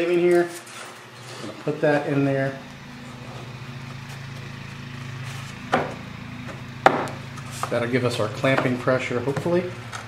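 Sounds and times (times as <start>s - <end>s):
steady low hum: 0.0s - 10.0s
sharp wooden knocks: 5.7s - 6.0s, 6.8s - 7.7s.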